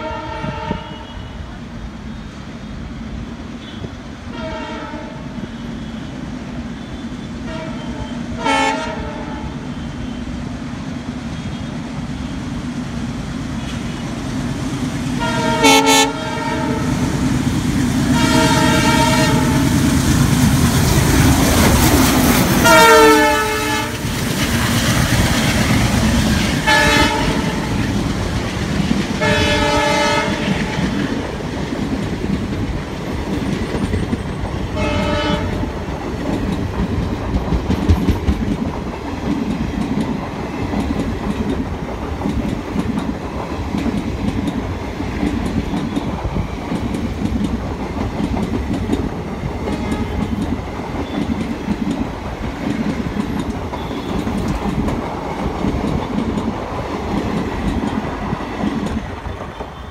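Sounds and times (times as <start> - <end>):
locomotive air horn: 0.0 - 1.5, 3.6 - 6.1, 6.9 - 10.2, 15.2 - 17.0, 18.1 - 19.8, 22.6 - 24.0, 26.6 - 27.8, 29.2 - 30.9, 34.8 - 35.6
train running rumble: 2.6 - 59.9
train wheels clickety-clack: 11.1 - 59.9.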